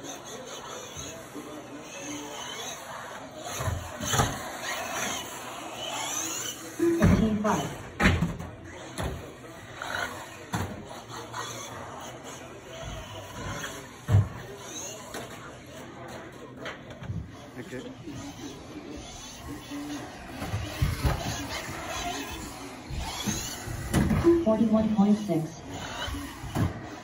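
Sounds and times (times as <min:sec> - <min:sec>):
electric toy car motor whines: 0:00.0 - 0:07.9, 0:08.6 - 0:16.5, 0:17.3 - 0:27.0
faint voices: 0:00.0 - 0:27.0.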